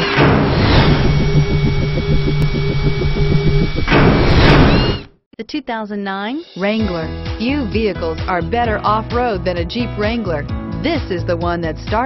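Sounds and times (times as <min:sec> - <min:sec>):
low electronic drone pulsing rapidly: 0:00.1 - 0:05.1.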